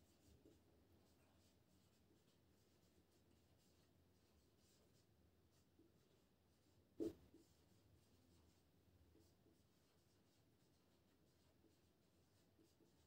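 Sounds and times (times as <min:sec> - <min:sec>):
marker scratching on whiteboard: 0:00.1 - 0:13.0.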